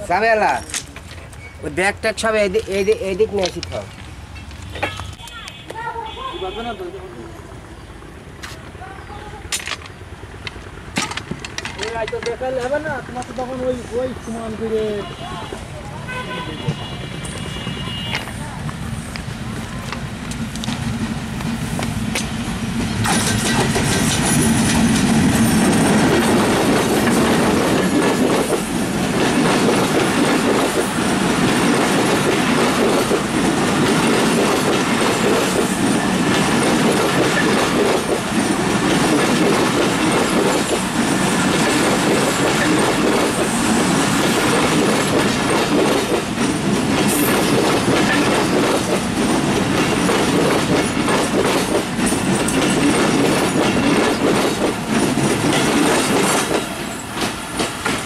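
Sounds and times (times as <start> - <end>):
diesel locomotive passing: 0.0 - 58.0
train wheels clacking on rails: 9.3 - 14.7, 16.6 - 58.0.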